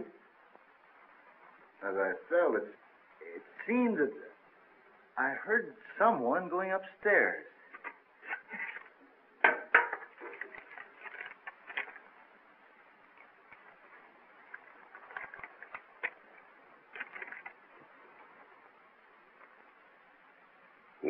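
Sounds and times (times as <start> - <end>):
film soundtrack hiss: 0.0 - 21.0
paper note rustling: 10.1 - 12.2, 13.1 - 18.4.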